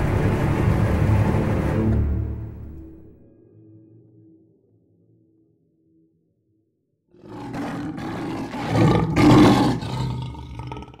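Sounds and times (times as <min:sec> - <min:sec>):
tiger roaring: 0:07.2 - 0:11.0.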